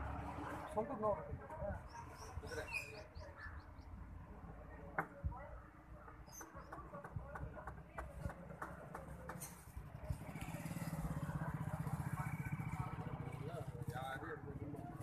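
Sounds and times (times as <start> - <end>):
motor vehicle engine running: 0.0 - 0.9, 8.4 - 15.0.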